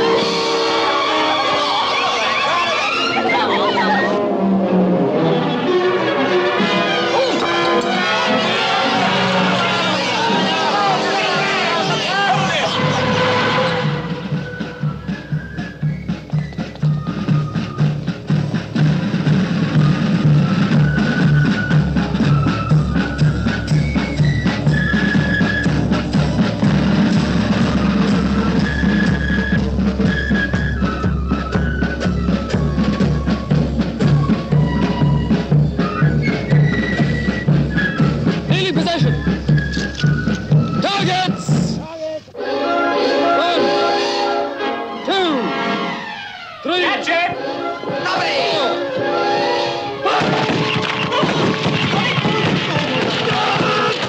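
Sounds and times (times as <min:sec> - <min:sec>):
marching band playing: 0:00.0 - 0:54.0
drums keeping march beat: 0:06.6 - 0:45.9, 0:47.0 - 0:54.0.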